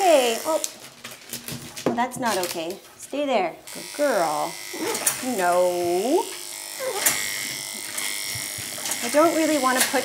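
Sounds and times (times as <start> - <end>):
electric clippers humming: 0.0 - 0.8, 3.6 - 10.0.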